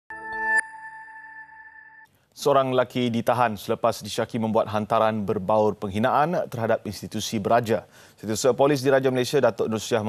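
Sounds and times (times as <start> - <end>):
high ringing tone: 0.1 - 2.1.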